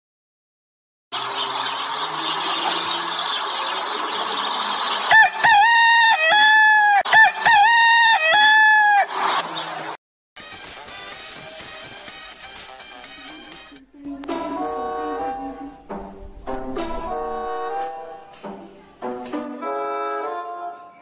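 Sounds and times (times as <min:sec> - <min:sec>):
rooster crowing: 0:05.0 - 0:09.4.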